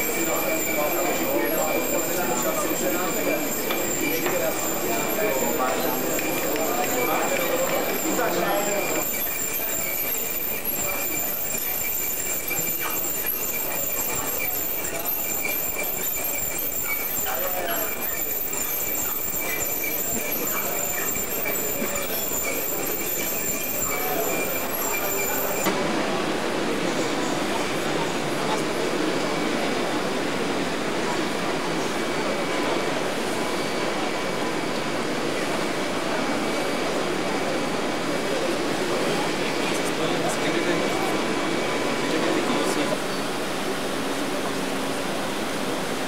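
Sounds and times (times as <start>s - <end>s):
crowd chatter: 0.0s - 46.0s
machinery with high whine: 0.0s - 46.0s.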